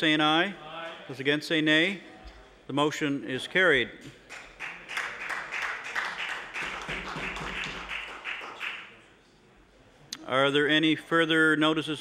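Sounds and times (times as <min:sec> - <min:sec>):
crowd applause: 0:04.3 - 0:09.0.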